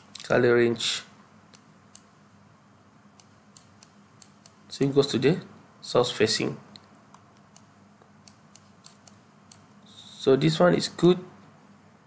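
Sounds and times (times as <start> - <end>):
computer mouse clicks: 7.5 - 9.6.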